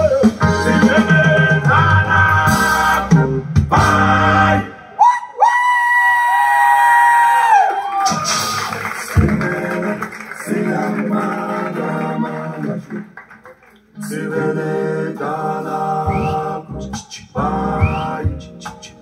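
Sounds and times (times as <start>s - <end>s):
song with singing over loudspeakers: 0.0s - 5.0s, 8.1s - 19.0s.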